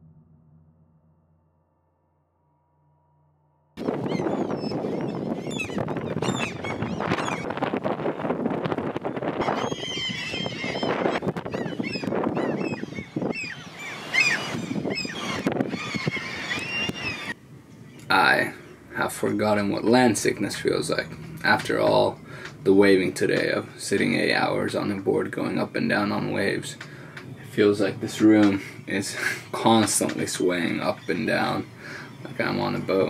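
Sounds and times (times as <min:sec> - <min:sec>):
gulls calling: 0:03.8 - 0:33.0.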